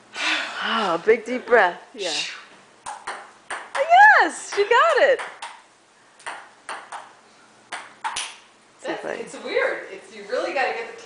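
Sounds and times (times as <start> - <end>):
ping pong ball clicks: 2.8 - 3.9, 4.5 - 7.1, 7.7 - 8.4.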